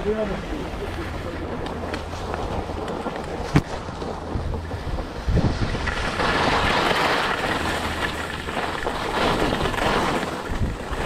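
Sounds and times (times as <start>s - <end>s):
skis sliding over snow: 0.0s - 11.0s
wind noise on microphone: 0.0s - 11.0s.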